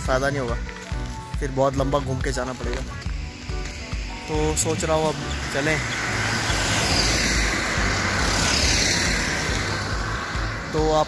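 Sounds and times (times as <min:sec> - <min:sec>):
car driving past: 0:03.3 - 0:11.0.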